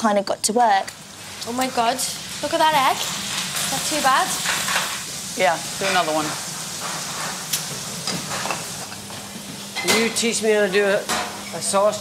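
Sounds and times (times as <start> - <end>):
food sizzling in a pan: 0.0 - 12.0.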